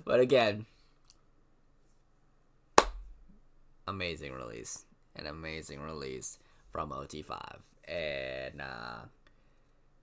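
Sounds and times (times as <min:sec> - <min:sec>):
sharp smack: 0:02.8 - 0:03.1.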